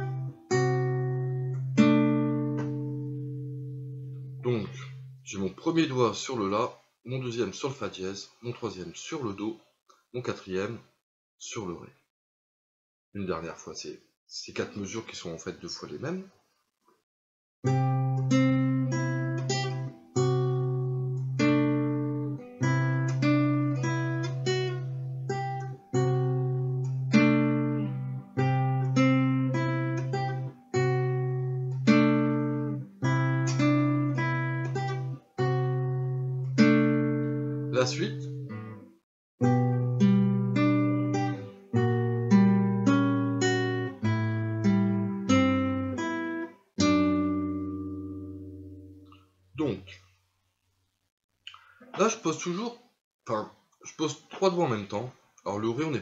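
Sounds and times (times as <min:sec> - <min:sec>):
classical guitar fingerpicking: 0:00.0 - 0:05.2, 0:17.7 - 0:38.8, 0:39.4 - 0:49.3.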